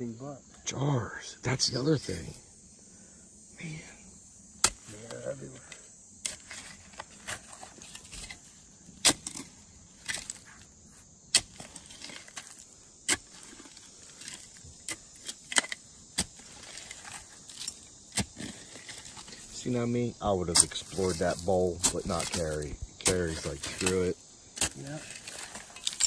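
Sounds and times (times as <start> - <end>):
cicadas buzzing: 0.0 - 26.0
hand pick striking rubble soil: 4.6 - 19.5, 20.5 - 26.0.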